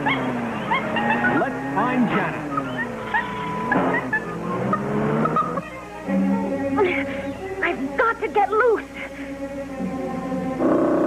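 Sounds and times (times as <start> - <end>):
cartoon car engine rising in pitch: 0.0 - 5.7
background music: 0.0 - 11.0.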